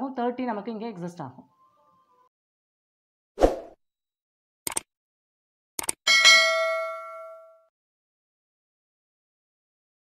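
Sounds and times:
small bell ringing: 0:06.1 - 0:07.7.

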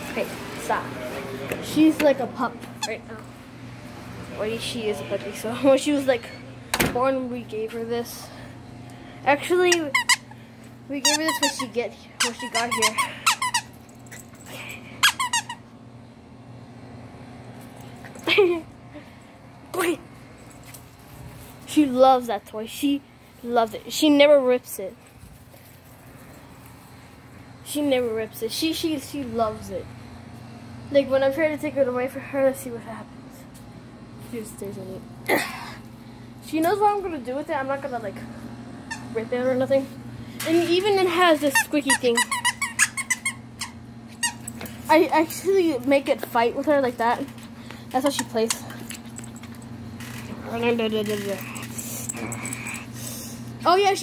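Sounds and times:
squeaky dog toy: 0:09.7 - 0:10.4, 0:11.0 - 0:13.8, 0:15.0 - 0:15.6, 0:38.9 - 0:39.1, 0:41.5 - 0:44.5.

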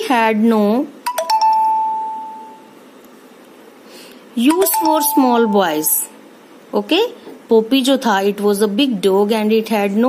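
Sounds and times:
electronic doorbell chime: 0:01.1 - 0:02.7, 0:04.5 - 0:06.0.

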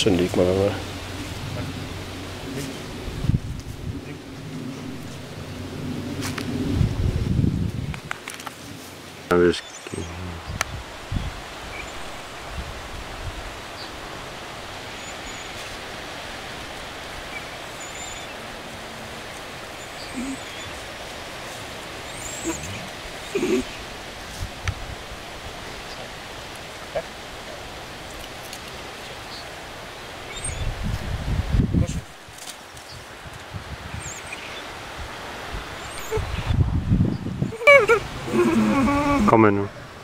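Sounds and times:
wind rumble on microphone: 0:00.0 - 0:09.1, 0:09.9 - 0:26.1, 0:30.3 - 0:40.0
wind in trees: 0:00.0 - 0:40.0.

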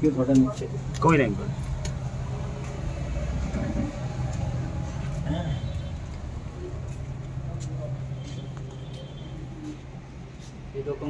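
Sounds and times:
faint voices: 0:00.6 - 0:11.0.

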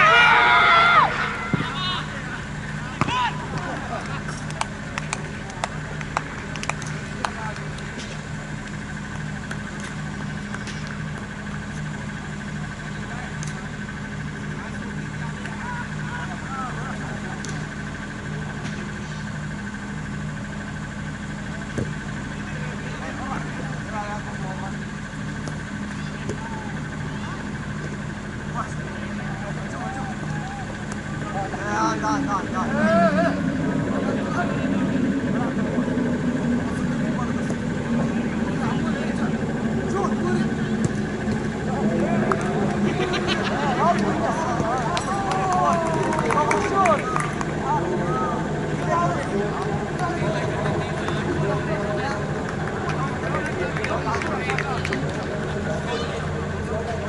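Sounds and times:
players calling out: 0:00.0 - 0:57.0
steady mechanical hum: 0:00.0 - 0:57.0.

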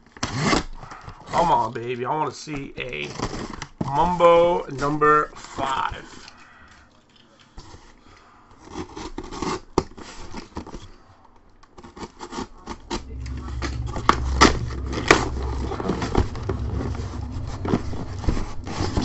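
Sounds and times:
low rumble: 0:12.7 - 0:19.0.

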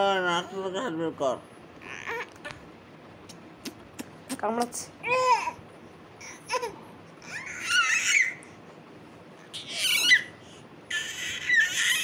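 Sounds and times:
infant squealing and babbling: 0:01.8 - 0:02.3, 0:06.2 - 0:08.4, 0:09.5 - 0:12.0.

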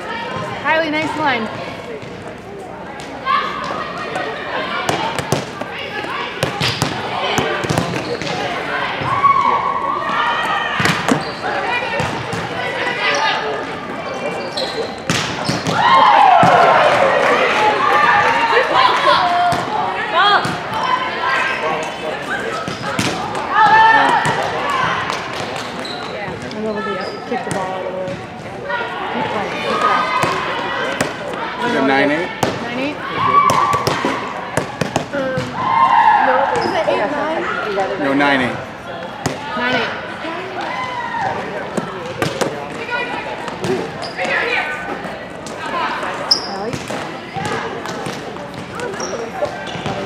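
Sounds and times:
players and spectators voices: 0:00.0 - 0:50.0
volleyball bouncing on gym floor: 0:04.8 - 0:08.4, 0:10.8 - 0:12.6, 0:15.1 - 0:16.7, 0:19.4 - 0:20.9, 0:22.6 - 0:26.7, 0:27.3 - 0:28.5, 0:29.7 - 0:31.4, 0:32.4 - 0:35.6, 0:46.4 - 0:50.0
volleyballs bouncing on hard floor: 0:06.4 - 0:08.4, 0:33.4 - 0:35.6.

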